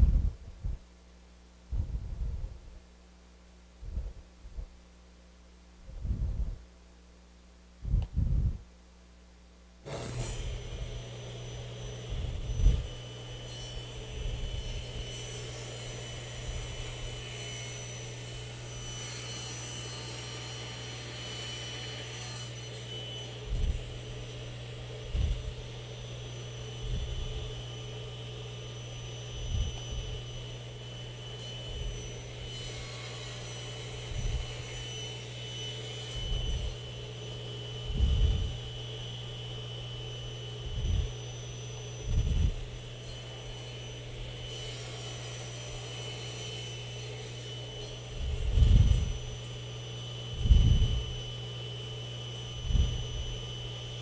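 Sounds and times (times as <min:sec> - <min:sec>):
table saw and dust collector hum: 0:09.8 - 0:54.0.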